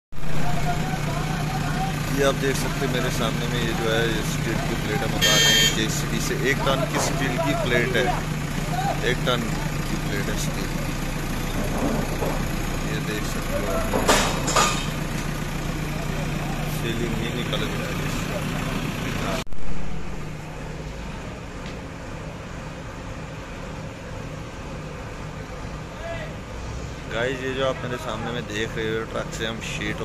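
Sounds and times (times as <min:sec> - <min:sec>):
diesel engine humming: 0:00.1 - 0:30.0.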